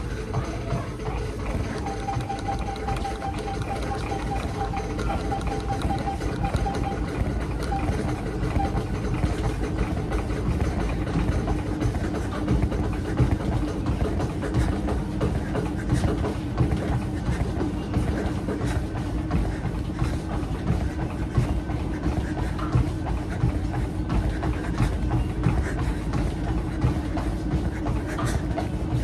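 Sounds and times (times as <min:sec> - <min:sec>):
running footfalls on treadmill: 0:00.0 - 0:29.0
treadmill motor and belt hum: 0:00.0 - 0:29.0.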